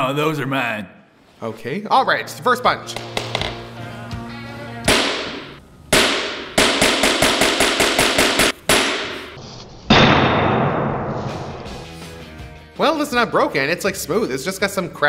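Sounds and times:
background music: 0:01.8 - 0:08.5, 0:11.1 - 0:15.0.

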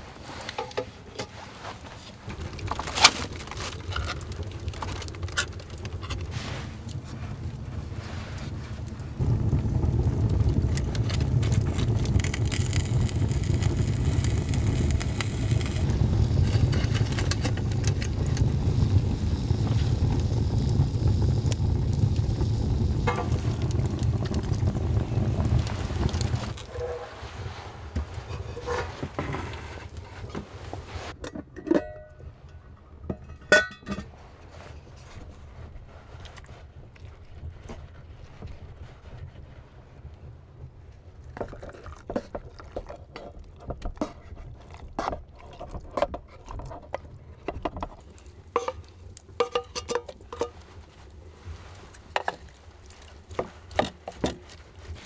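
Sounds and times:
wood fire crackling: 0:00.0 - 0:31.2, 0:31.8 - 0:55.0
metal tin clinks: 0:49.4 - 0:50.6.

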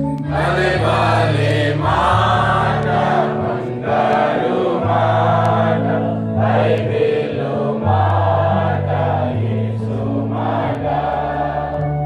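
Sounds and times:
congregation singing: 0:00.0 - 0:12.0
sustained low instrumental notes: 0:00.0 - 0:12.0.

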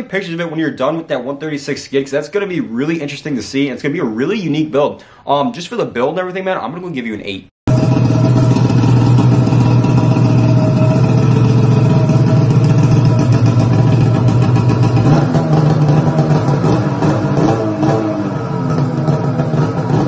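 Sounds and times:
snowmobile engine running loud: 0:07.7 - 0:17.2.

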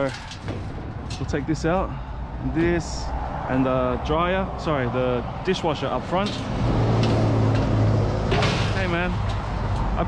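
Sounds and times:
vehicle engine hum passing: 0:02.2 - 0:10.0.

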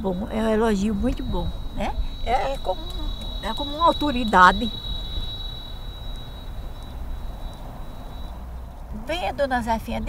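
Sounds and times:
high-pitched drone: 0:00.0 - 0:06.2
low steady rumble: 0:00.0 - 0:10.0.

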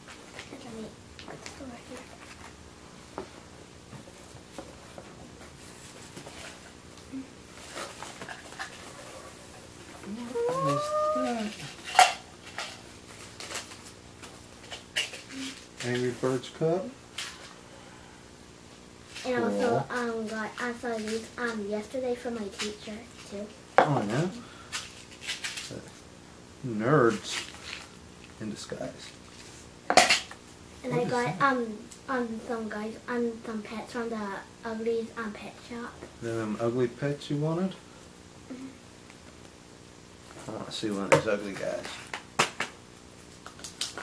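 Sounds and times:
person exclaiming: 0:10.1 - 0:11.7, 0:19.3 - 0:19.9
person murmuring: 0:10.1 - 0:11.7, 0:19.3 - 0:19.9.

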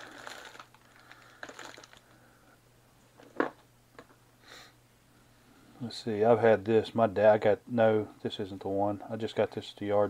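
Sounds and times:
faint steady low hum: 0:00.0 - 0:10.0.

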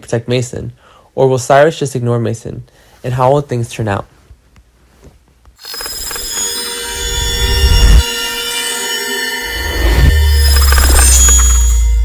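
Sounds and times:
bright ringing swell of held tones: 0:05.6 - 0:12.0.

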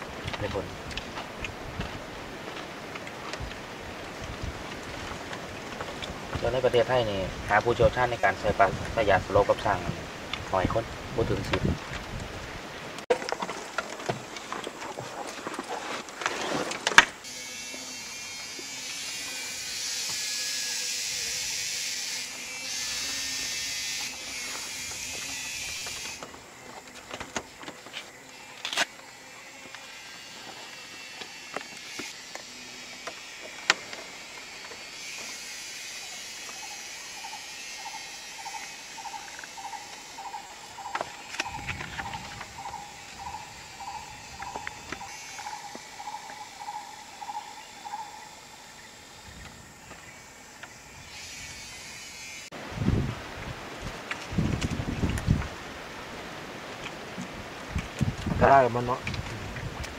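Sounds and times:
insects buzzing: 0:00.0 - 0:53.0.

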